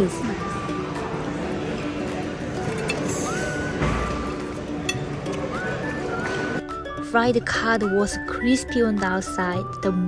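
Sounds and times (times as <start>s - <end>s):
background music: 0.0s - 10.0s
fork clinking on ceramic plate: 2.6s - 3.5s.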